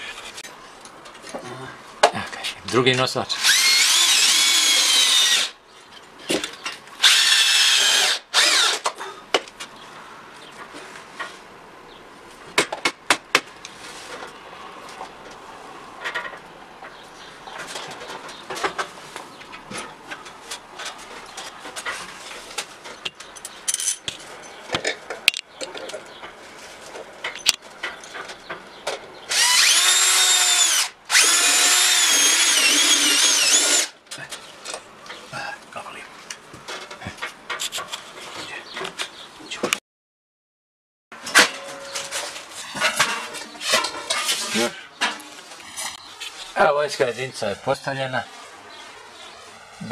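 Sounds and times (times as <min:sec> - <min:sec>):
power drill whining: 0:03.4 - 0:05.6, 0:07.0 - 0:08.9, 0:29.3 - 0:33.9.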